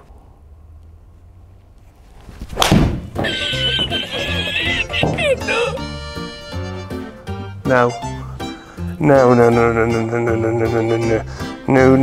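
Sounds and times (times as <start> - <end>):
golf club hitting ball: 2.5 - 3.3
comedy music with falling notes: 3.2 - 12.0.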